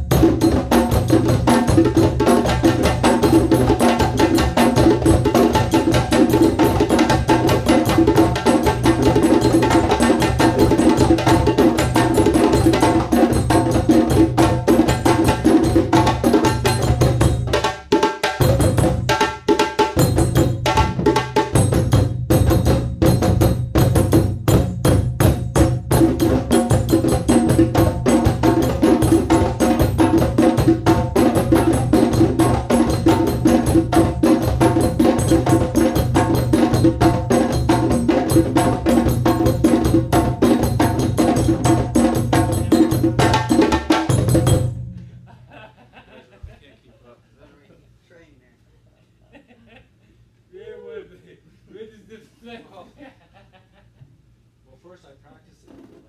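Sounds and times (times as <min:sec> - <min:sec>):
hand drums playing: 0:00.0 - 0:45.0.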